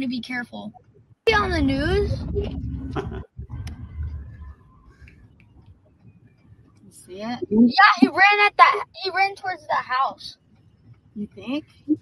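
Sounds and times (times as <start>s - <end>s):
person speaking: 1.3s - 4.7s, 7.0s - 10.2s.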